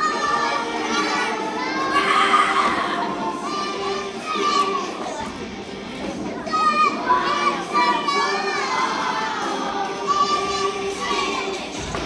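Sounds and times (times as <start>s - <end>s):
background music: 0.0s - 12.0s
children singing and shouting: 0.0s - 12.0s.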